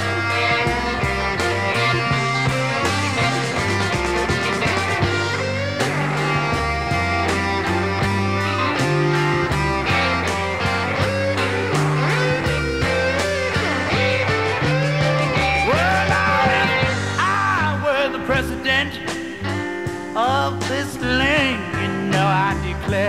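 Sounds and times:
bass guitar: 0:00.0 - 0:23.0
drums: 0:00.0 - 0:23.0
electric guitar playing: 0:00.0 - 0:23.0.

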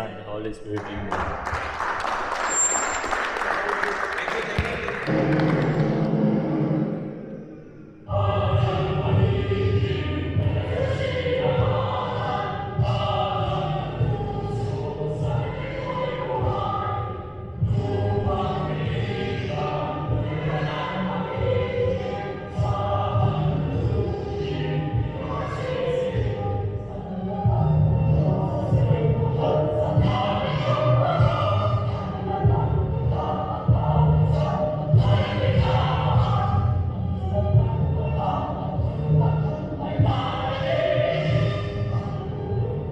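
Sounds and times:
crowd clapping: 0:00.7 - 0:06.2
music with long held tones: 0:01.5 - 0:42.9.

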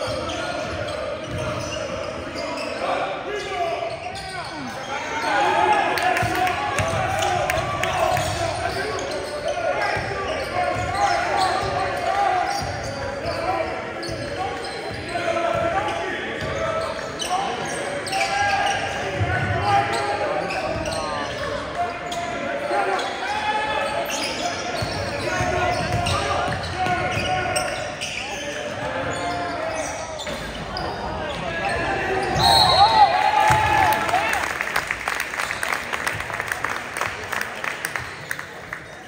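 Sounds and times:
people calling out and talking: 0:00.0 - 0:34.5.

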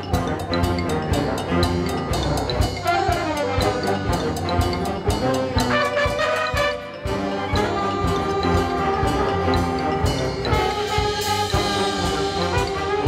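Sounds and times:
concert band playing: 0:00.0 - 0:13.0
steady drum beat: 0:00.0 - 0:13.0.

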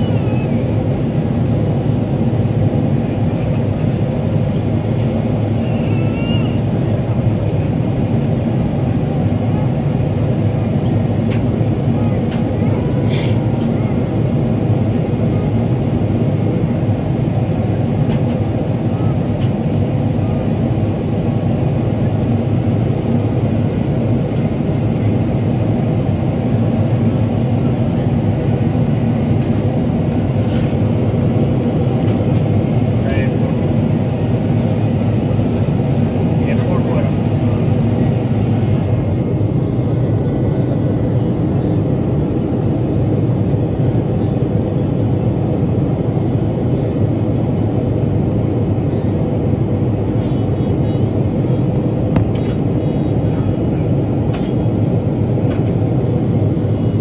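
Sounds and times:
airplane cabin rumble: 0:00.0 - 0:57.0.

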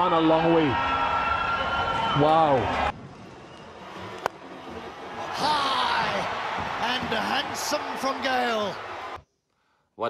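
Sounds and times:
stadium background noise: 0:00.0 - 0:09.2.

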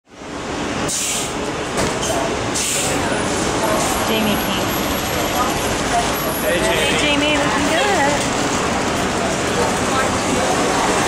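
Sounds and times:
traffic noise: 0:00.0 - 0:11.0
large vehicle engine running: 0:00.1 - 0:11.0
short air hisses: 0:00.9 - 0:01.4.

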